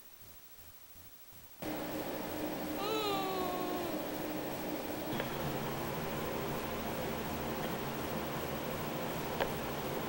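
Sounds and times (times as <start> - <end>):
steady low hum: 0.0 - 10.0
small pet crying: 2.8 - 4.2.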